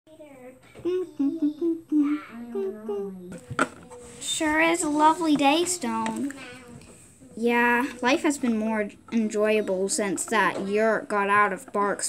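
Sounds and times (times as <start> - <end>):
person humming a tune: 0.8 - 3.1.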